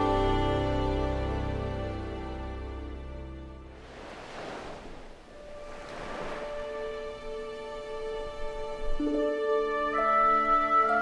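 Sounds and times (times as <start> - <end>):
small waves breaking on beach: 3.8 - 8.9.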